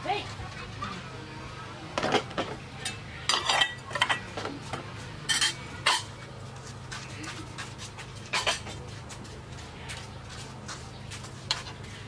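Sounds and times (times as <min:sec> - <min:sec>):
metal spoon clinking on plate: 0:02.8 - 0:04.3, 0:05.3 - 0:06.1.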